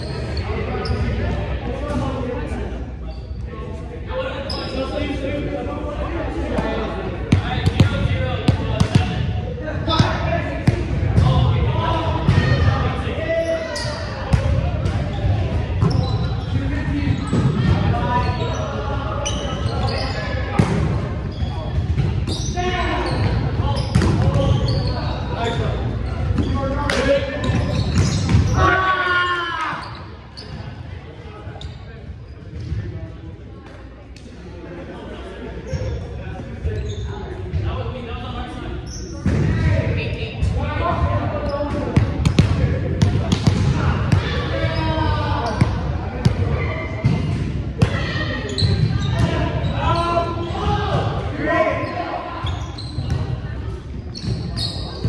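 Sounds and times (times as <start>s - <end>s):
players calling out and talking: 0.0s - 55.0s.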